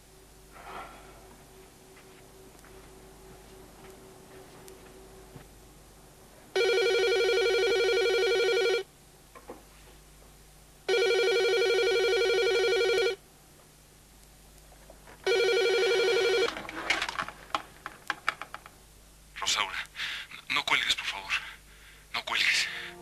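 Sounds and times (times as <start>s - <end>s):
telephone ringing electronic trill: 6.6s - 8.8s, 15.3s - 16.5s.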